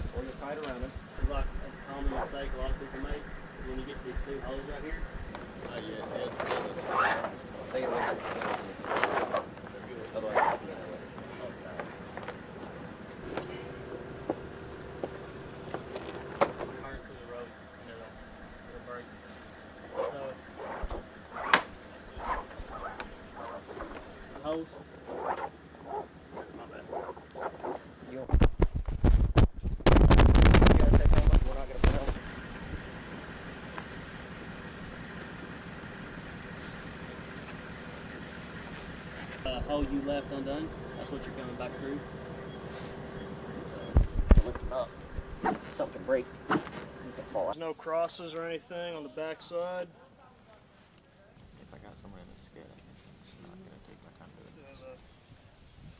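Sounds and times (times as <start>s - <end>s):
steady low hum: 0.0s - 55.9s.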